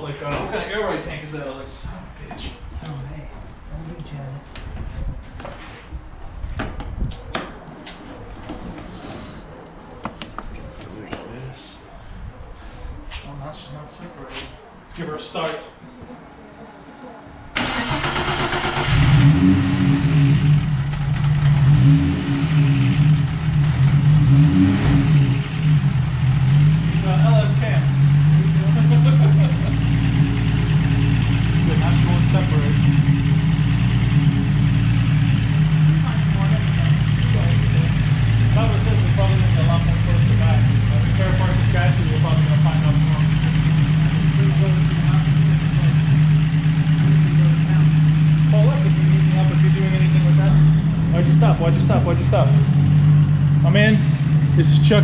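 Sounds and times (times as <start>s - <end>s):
car engine idling: 17.6s - 55.0s.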